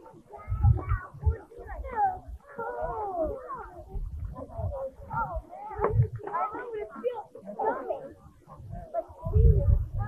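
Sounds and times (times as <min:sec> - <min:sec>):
wind rumbling on microphone: 0:00.0 - 0:06.4, 0:08.2 - 0:10.0.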